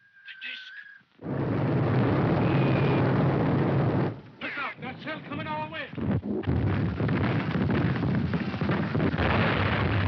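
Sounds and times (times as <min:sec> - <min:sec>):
rumble of explosions: 0:01.2 - 0:10.0.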